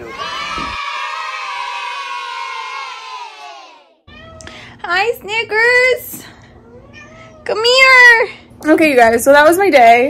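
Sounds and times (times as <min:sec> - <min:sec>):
children cheering: 0:00.0 - 0:04.0.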